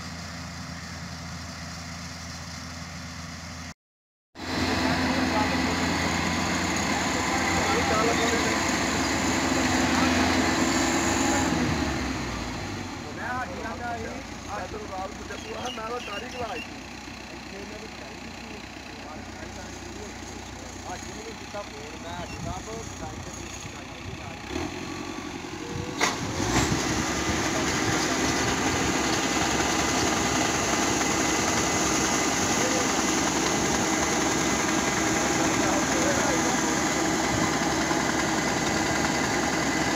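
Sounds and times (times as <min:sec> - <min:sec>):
combine harvester engine drone: 0:00.0 - 0:03.7, 0:04.4 - 0:39.9.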